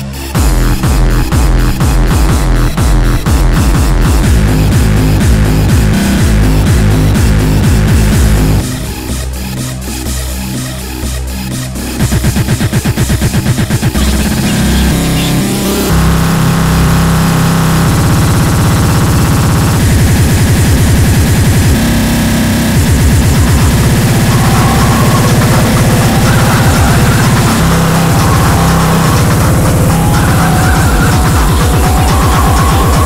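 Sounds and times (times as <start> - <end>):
distorted fast electronic music: 0.0 - 33.0.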